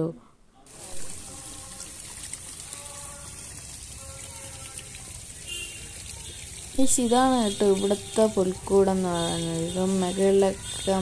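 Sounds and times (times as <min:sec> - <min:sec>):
small waterfall trickling: 0:00.7 - 0:11.0.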